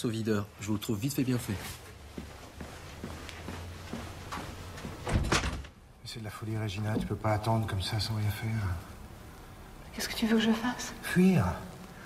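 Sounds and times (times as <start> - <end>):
door opening and closing: 4.7 - 5.8
door closing knocks: 4.9 - 5.8, 6.9 - 7.3.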